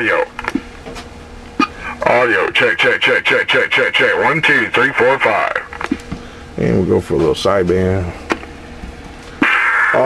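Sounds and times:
faint steady hum: 0.0 - 10.0
buzzy radio voice: 1.8 - 5.7.

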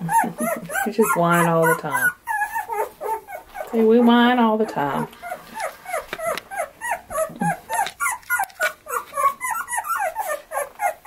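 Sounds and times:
puppies whining: 0.0 - 11.0.

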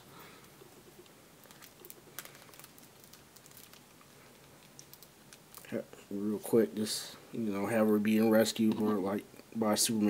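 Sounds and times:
small objects clicking and rustling: 0.4 - 5.7.

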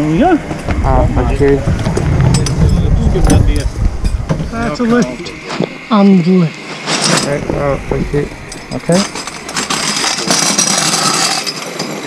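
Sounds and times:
voices: 0.0 - 11.4.

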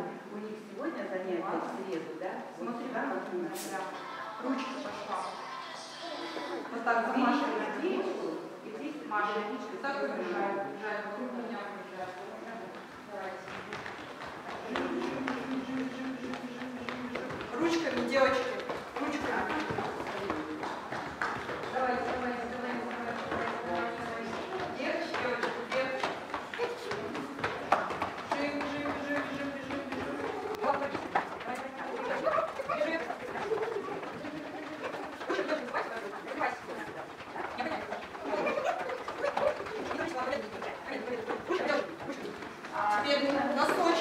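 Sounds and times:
young children's voices: 3.8 - 6.8
small feet running on wooden floor: 12.6 - 44.0.

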